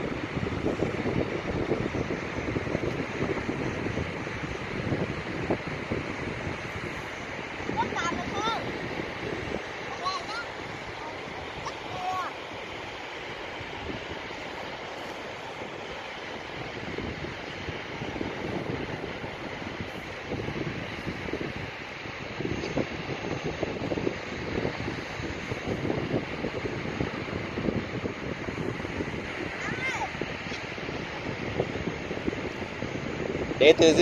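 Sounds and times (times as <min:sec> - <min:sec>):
surf washing: 0:00.0 - 0:34.0
wind buffeting microphone: 0:00.0 - 0:34.0.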